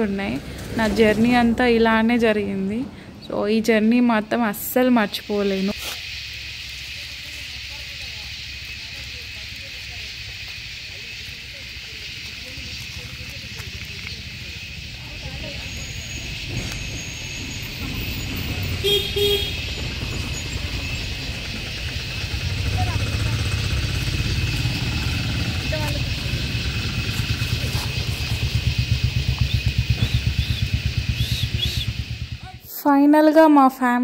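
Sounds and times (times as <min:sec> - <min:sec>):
engine-like rumble: 0:00.0 - 0:32.8
high-pitched drone: 0:14.3 - 0:32.7.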